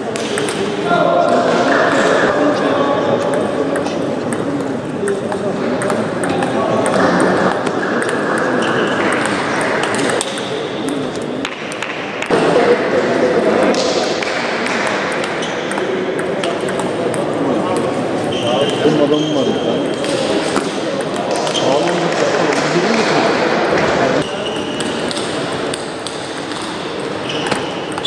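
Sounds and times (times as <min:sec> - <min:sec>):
babble of many voices: 0:00.0 - 0:28.0
table tennis ball clicking: 0:03.3 - 0:12.3, 0:15.1 - 0:17.9.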